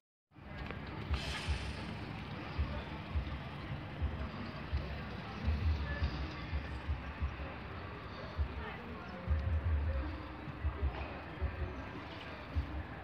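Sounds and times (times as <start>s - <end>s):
steady outdoor hiss: 0.4s - 13.0s.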